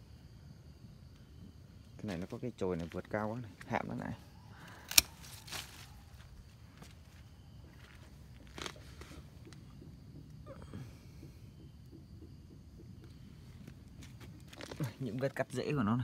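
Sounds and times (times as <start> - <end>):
pruning shears snipping: 4.8 - 5.8.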